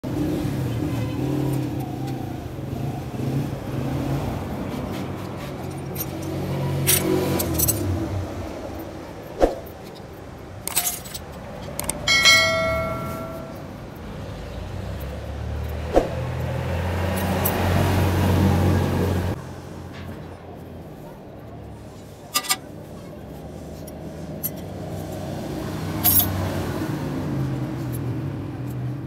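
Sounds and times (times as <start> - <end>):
vehicle low hum: 0.0 - 29.0
metal clicks and clinks: 5.2 - 8.0, 9.7 - 13.8, 22.3 - 22.7, 26.0 - 26.4
metal part ringing like a bell: 11.8 - 13.8, 22.4 - 22.6.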